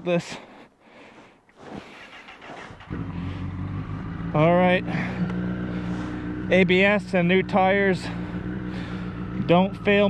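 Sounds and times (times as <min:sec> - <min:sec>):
motorcycle engine idling: 0:02.0 - 0:10.0.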